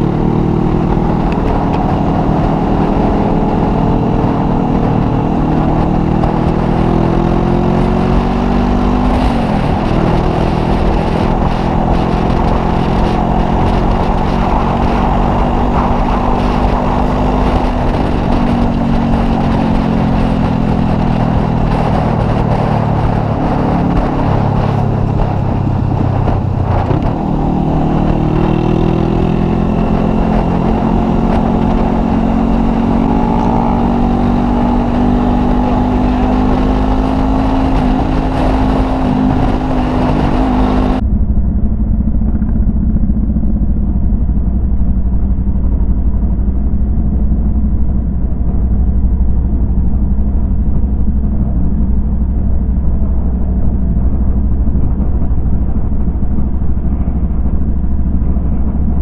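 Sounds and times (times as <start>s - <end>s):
motorcycle engine running: 0.0s - 59.0s
wind rush: 0.0s - 59.0s.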